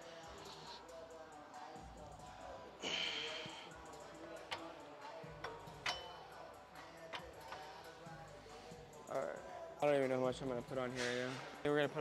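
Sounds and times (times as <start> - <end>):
background music with steady beat: 0.0 - 12.0.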